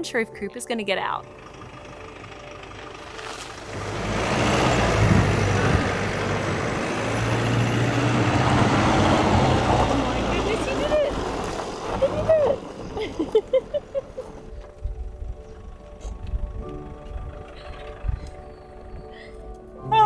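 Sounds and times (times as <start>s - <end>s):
van engine running: 0.0s - 19.8s
tyres on grass: 3.0s - 4.1s.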